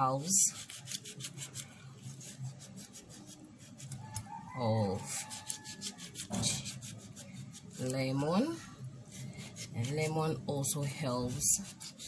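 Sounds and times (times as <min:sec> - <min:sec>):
knife sawing through lemon: 0:05.0 - 0:08.0, 0:11.4 - 0:12.0.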